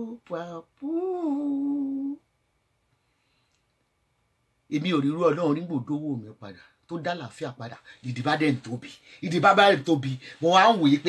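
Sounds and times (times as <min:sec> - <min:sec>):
woman singing long note: 0:00.8 - 0:02.2.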